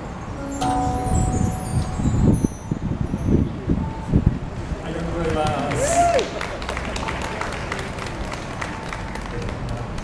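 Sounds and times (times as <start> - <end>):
percussion chimes ringing: 0.3 - 4.6.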